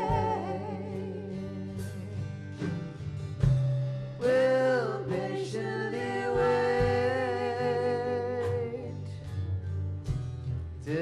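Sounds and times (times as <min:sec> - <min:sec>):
acoustic guitar: 0:00.0 - 0:11.0
bass: 0:00.0 - 0:11.0
singers holding a note: 0:04.2 - 0:09.0.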